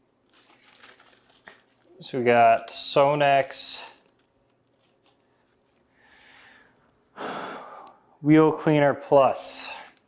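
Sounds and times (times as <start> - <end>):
man speaking: 2.0 - 4.0, 8.2 - 10.0
man breathing: 5.9 - 8.2.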